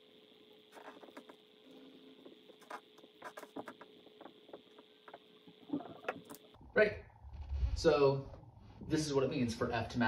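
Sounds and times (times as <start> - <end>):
faint room hum: 0.0 - 10.0
marker squeaking on whiteboard: 0.7 - 1.3, 2.6 - 6.4.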